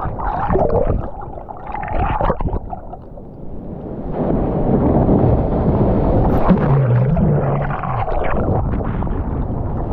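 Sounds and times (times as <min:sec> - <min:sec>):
underwater rush of whitewater: 0:06.2 - 0:09.2
water splashing: 0:06.3 - 0:08.9.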